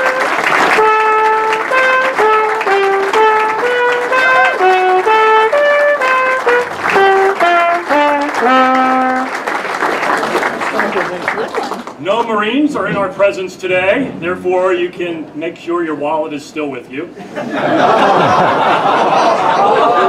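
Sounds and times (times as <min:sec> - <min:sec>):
trumpet melody: 0:00.0 - 0:09.8
people clapping: 0:00.0 - 0:12.4.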